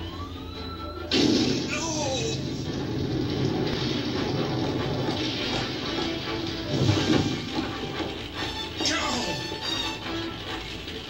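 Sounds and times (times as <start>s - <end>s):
cartoon background music: 0.0s - 11.0s.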